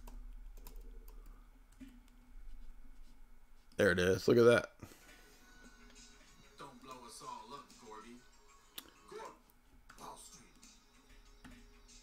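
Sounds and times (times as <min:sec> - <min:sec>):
low steady hum: 0:00.0 - 0:07.5.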